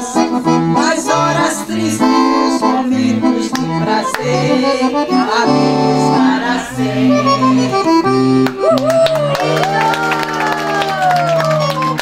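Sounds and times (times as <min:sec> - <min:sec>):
accordion playing a tune: 0:00.0 - 0:12.0
hand clapping: 0:03.5 - 0:04.3, 0:08.4 - 0:12.0.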